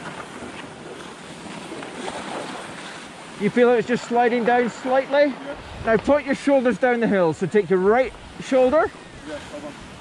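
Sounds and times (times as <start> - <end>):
skis sliding on packed snow: 0.0 - 7.4
wind on microphone: 5.4 - 6.4, 7.4 - 10.0.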